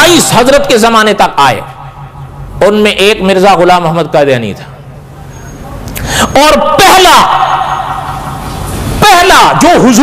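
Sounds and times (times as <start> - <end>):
man's amplified voice: 0.0 - 4.9, 6.2 - 8.4, 9.0 - 10.0.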